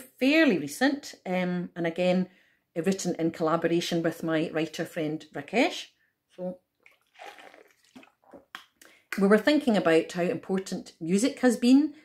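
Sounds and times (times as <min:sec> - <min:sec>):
person gulping and swallowing: 0:06.8 - 0:08.8.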